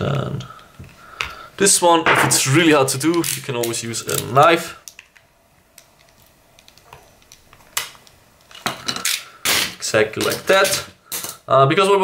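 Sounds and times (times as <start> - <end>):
tools and parts clattering on bench: 2.1 - 2.6, 8.5 - 9.2.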